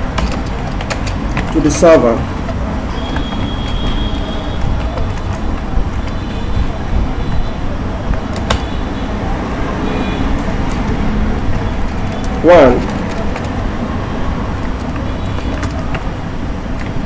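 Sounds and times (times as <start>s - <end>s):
keyboard and mouse clicks: 0.0s - 6.7s, 7.3s - 8.8s, 10.2s - 17.0s.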